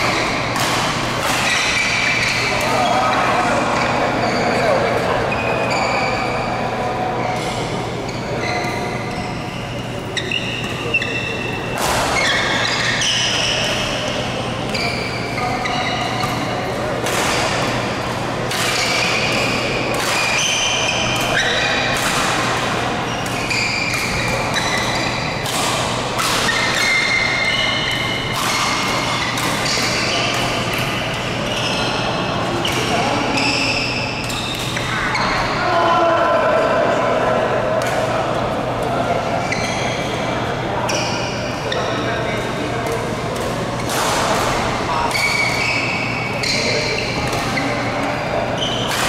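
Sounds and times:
rackets striking shuttlecock: 0.0s - 2.8s, 10.2s - 14.8s, 15.6s - 32.0s, 42.5s - 49.0s
shoes squeaking on court floor: 0.0s - 35.6s, 38.8s - 49.0s.

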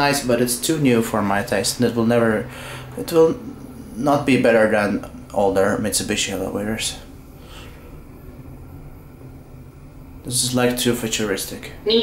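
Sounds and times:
elevator low hum: 0.0s - 12.0s.

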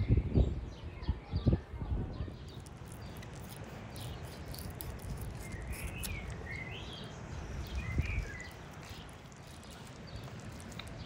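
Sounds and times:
bird chirping: 2.2s - 11.0s
knife cutting fish skin: 2.6s - 6.5s, 7.7s - 11.0s.

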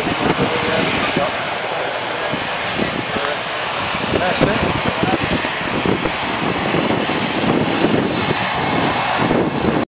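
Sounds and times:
jet airliner engine rumble: 0.0s - 9.9s.

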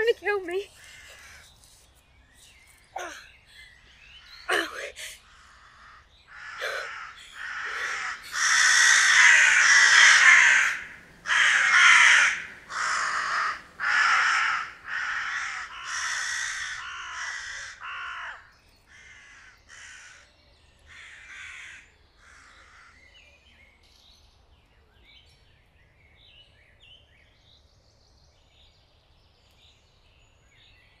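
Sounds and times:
small birds chirping: 0.0s - 31.0s
crows cawing: 0.8s - 1.5s, 4.2s - 20.3s, 20.9s - 23.1s.

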